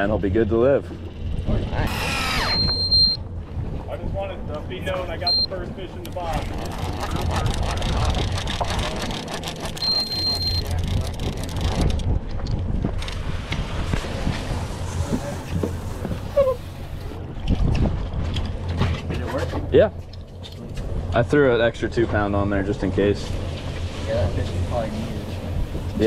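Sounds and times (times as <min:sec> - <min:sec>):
outboard engines idling: 0:00.6 - 0:12.0, 0:18.5 - 0:26.0
short high beep: 0:02.3 - 0:03.2, 0:05.2 - 0:05.5, 0:09.8 - 0:10.7
wind on microphone: 0:06.2 - 0:09.3, 0:09.9 - 0:19.3, 0:24.4 - 0:26.0.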